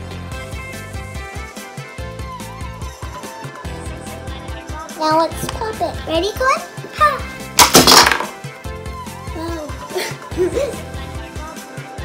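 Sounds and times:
background music: 0:00.0 - 0:12.0
plastic ball popping open: 0:07.6 - 0:08.4.

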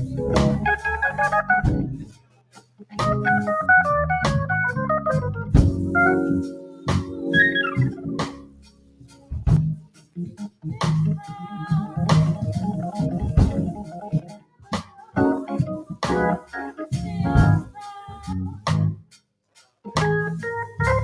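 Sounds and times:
organ chords: 0:00.0 - 0:14.4, 0:15.2 - 0:19.0, 0:19.9 - 0:21.0.

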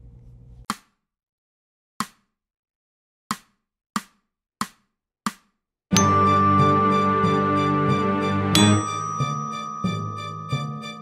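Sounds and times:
music: 0:03.3 - 0:11.0
bells: 0:06.0 - 0:11.0.

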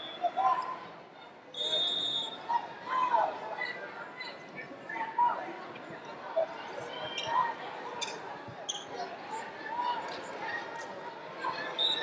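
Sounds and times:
indistinct crowd voices: 0:00.0 - 0:12.0
short squeaks: 0:08.0 - 0:09.0.

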